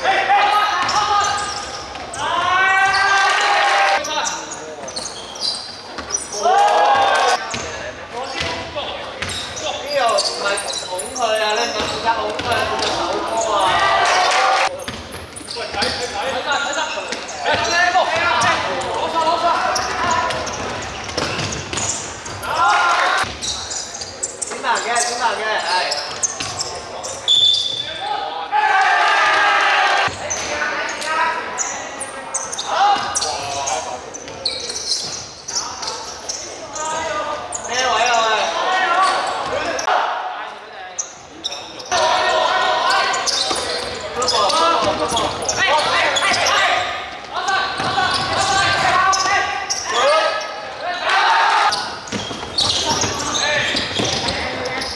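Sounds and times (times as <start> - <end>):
players shouting: 0.0 - 4.3, 6.2 - 7.4, 9.6 - 14.8, 17.4 - 23.3, 27.8 - 31.5, 41.8 - 52.0
basketball bouncing on wooden court: 11.7 - 13.0, 19.8 - 22.4, 52.0 - 54.9.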